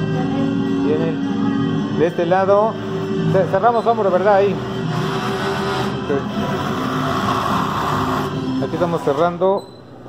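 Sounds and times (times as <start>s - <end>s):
sewing machines whirring: 3.4s - 9.6s.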